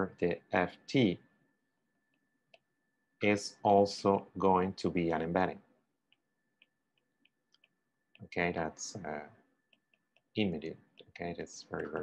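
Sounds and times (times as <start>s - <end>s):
stylus tapping writing tablet: 6.0s - 8.3s, 9.6s - 12.0s.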